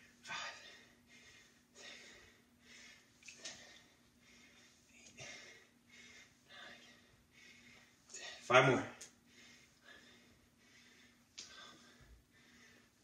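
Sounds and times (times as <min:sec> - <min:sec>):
faint steady hum: 0:00.0 - 0:13.0
man breathing forcefully: 0:00.1 - 0:08.4, 0:09.2 - 0:13.0.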